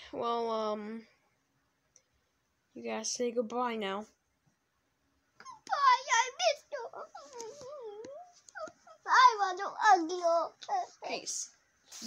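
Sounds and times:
soft wordless whimpering voice: 5.4 - 9.9.

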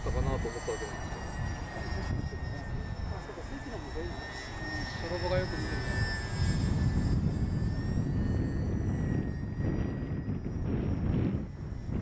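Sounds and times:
faint voices talking: 0.0 - 6.4
airplane engines droning: 0.0 - 12.0.

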